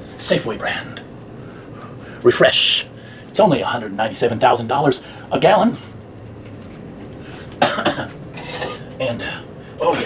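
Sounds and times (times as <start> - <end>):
man coughing: 7.6 - 8.9.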